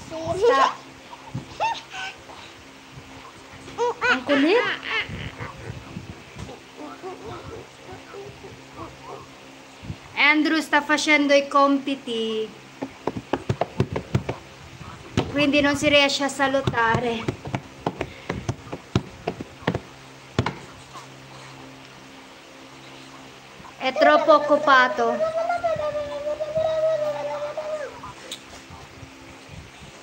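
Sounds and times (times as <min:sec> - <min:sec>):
hand slapping a desk: 0:12.8 - 0:14.4, 0:16.6 - 0:20.7.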